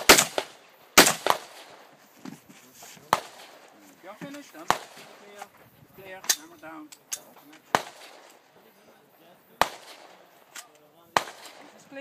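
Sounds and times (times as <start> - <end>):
rifle shots: 0.0 - 1.9, 4.6 - 5.2, 7.7 - 8.4, 9.6 - 10.5, 11.1 - 12.0.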